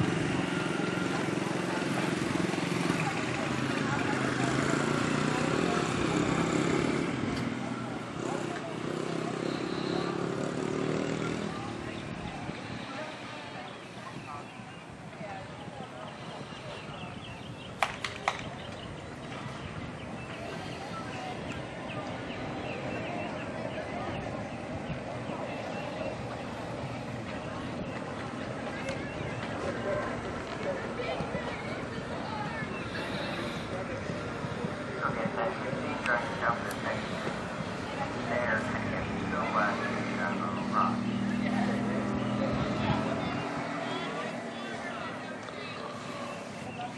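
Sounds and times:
background noise: 0:00.0 - 0:46.9
birds chirping: 0:00.0 - 0:46.9
indistinct voices: 0:00.0 - 0:46.9.

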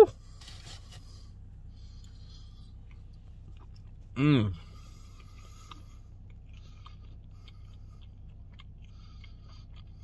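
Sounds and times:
low steady background hum: 0:00.0 - 0:10.0
closed-mouth chewing: 0:01.8 - 0:10.0.

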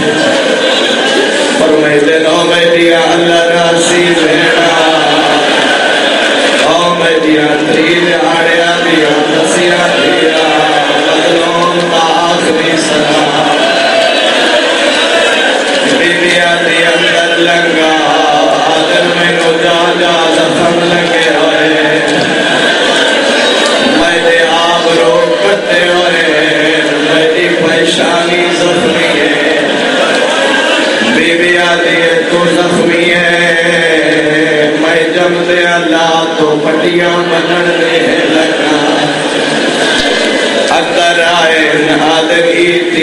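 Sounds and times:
man chanting melodically: 0:00.0 - 0:00.4, 0:01.4 - 0:13.9, 0:15.8 - 0:22.6, 0:23.8 - 0:30.2, 0:31.0 - 0:43.0.

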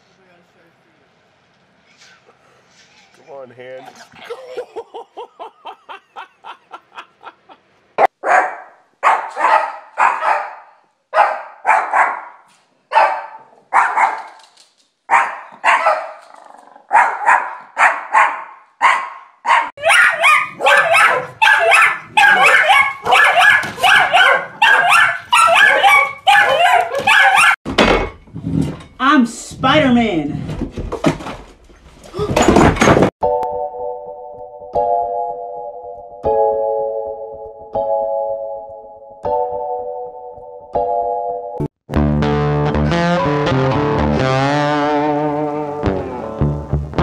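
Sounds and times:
woman laughing: 0:03.9 - 0:07.7
small dog barking: 0:08.0 - 0:14.3, 0:15.1 - 0:16.2, 0:16.9 - 0:27.6.

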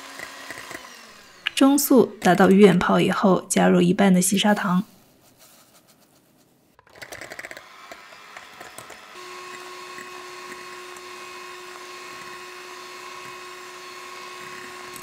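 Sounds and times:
electric hand mixer beating: 0:00.0 - 0:02.5, 0:06.8 - 0:15.0.

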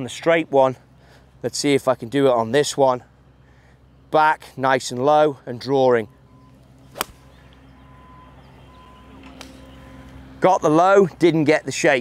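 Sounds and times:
golf club striking ball: 0:06.9 - 0:07.4.

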